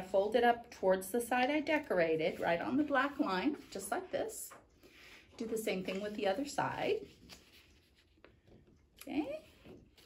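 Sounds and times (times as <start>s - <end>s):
paper rustling: 1.8s - 8.8s.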